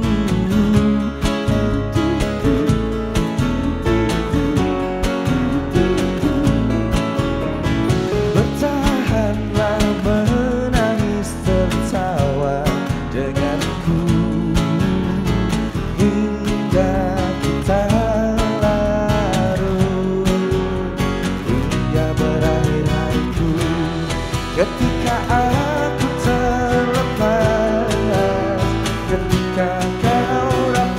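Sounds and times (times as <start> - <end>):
keyboard: 0.0 - 30.9
man singing: 0.0 - 30.9
strummed acoustic guitar: 0.0 - 30.9.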